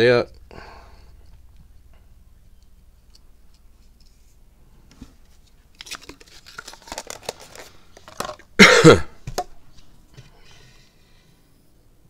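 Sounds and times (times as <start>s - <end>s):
person coughing: 8.6s - 9.2s.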